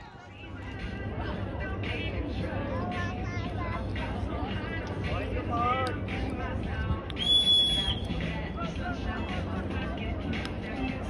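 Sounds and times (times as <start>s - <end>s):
crowd chatter: 0.0s - 11.0s
whistle blast: 7.2s - 8.1s.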